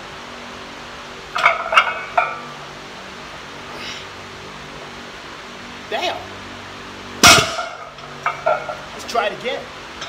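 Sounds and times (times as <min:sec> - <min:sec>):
barbell clanging on concrete: 0:01.4 - 0:02.5, 0:07.2 - 0:08.9
weight plates clinking: 0:01.4 - 0:02.5, 0:07.2 - 0:08.9.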